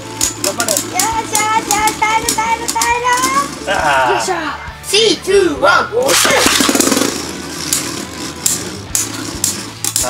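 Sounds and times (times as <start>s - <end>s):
spinning tops clacking: 0.0s - 3.7s, 6.1s - 10.0s
spinning tops scraping: 0.0s - 4.0s, 6.0s - 10.0s
launcher whirring rip: 6.1s - 10.0s.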